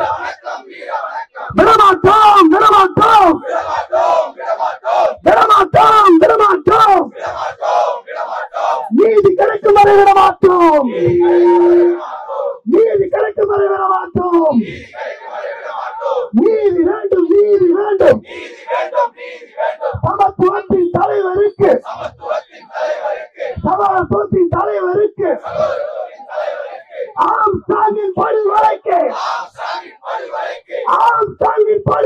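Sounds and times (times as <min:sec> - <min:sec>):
crowd shouting back: 0:00.0 - 0:17.0
person shouting into microphone: 0:01.5 - 0:03.4, 0:05.2 - 0:07.1, 0:08.9 - 0:12.0, 0:12.7 - 0:14.7, 0:16.4 - 0:18.2, 0:27.2 - 0:29.1.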